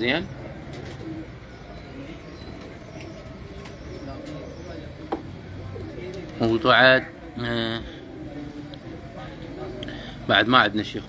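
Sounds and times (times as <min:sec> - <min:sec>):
pigeons cooing softly: 0:00.0 - 0:11.0.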